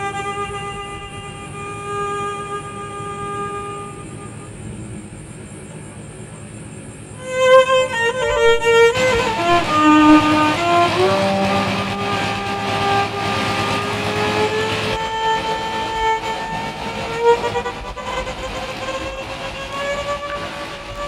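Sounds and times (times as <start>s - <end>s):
violin bowing long notes: 0.0s - 4.8s, 7.2s - 21.0s
noise drone hiss: 0.0s - 21.0s.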